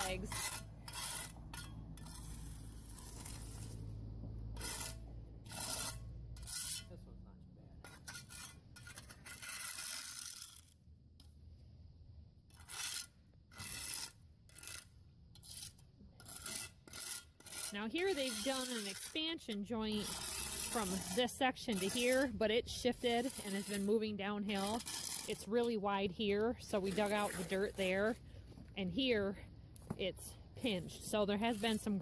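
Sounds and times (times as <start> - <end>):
trowel scraping concrete: 0.0 - 7.0, 7.8 - 11.3, 12.5 - 32.0.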